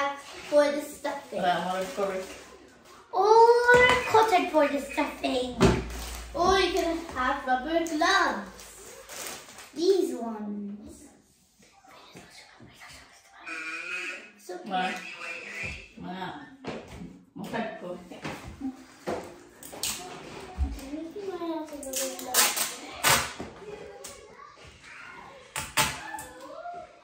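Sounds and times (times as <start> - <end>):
children talking: 0.0 - 17.0, 18.4 - 27.0.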